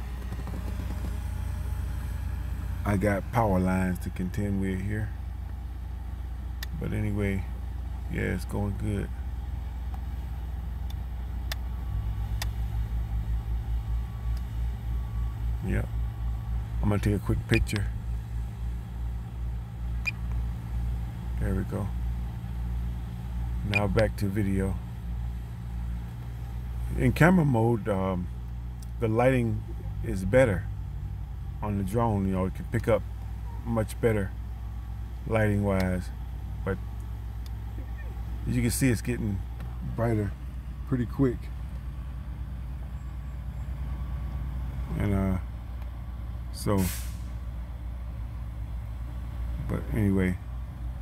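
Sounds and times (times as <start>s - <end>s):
engine idling: 0.0s - 51.0s.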